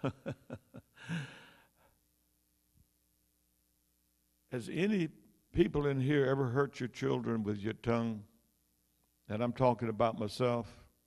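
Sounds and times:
man sighing: 0.9s - 1.7s.

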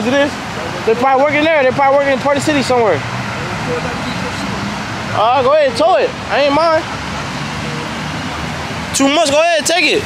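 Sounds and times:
road traffic hiss: 0.0s - 10.0s.

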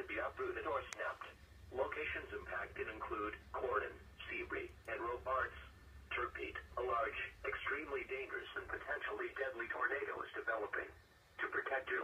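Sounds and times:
synthesized voice through speaker: 0.0s - 12.0s.

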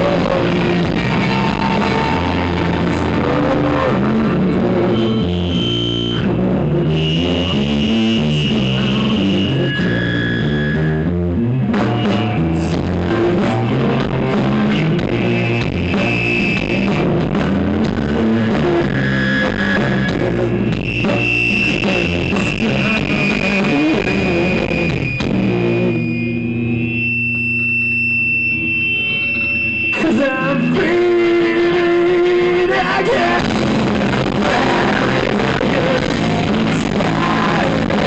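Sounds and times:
bass guitar: 0.0s - 38.0s
drums: 0.0s - 38.0s
electric guitars: 0.0s - 38.0s
grunge band playing loud: 0.0s - 38.0s
high steady whine: 0.0s - 38.0s
drum and cymbal hits: 33.4s - 38.0s.

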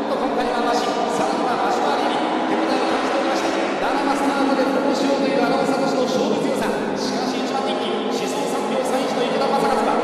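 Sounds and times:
person speaking: 0.0s - 10.0s
racing motorcycle engines droning: 0.8s - 6.5s.

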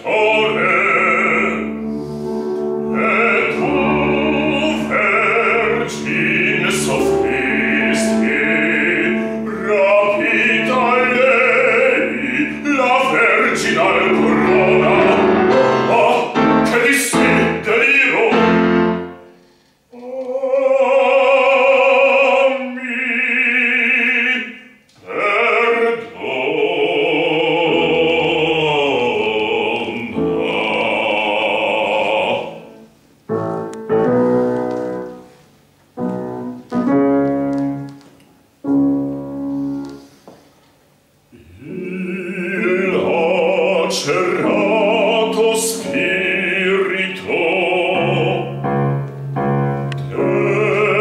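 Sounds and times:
man singing operatically: 0.0s - 2.0s, 2.7s - 19.3s, 19.9s - 32.9s, 41.3s - 49.1s, 49.8s - 51.0s
piano accompaniment: 0.0s - 19.6s, 25.1s - 40.6s, 41.4s - 51.0s.

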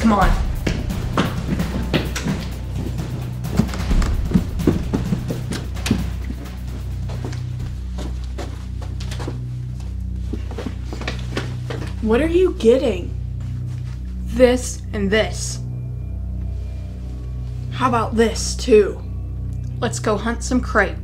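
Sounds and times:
droning background music: 0.0s - 21.0s
quick footsteps: 0.1s - 12.0s.

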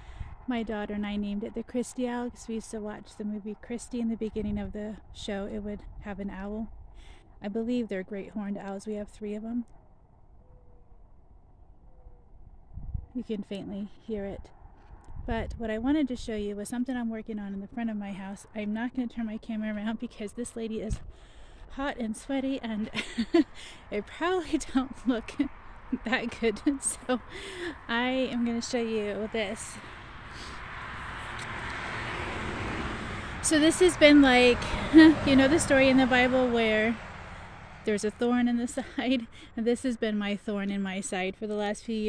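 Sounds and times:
wind rumble on microphone: 0.0s - 40.1s
passing vehicle rushing: 26.8s - 38.3s.

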